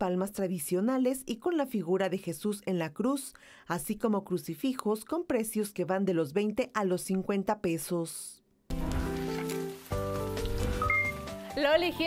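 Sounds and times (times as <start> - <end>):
synthesized news jingle chords: 10.7 - 12.0.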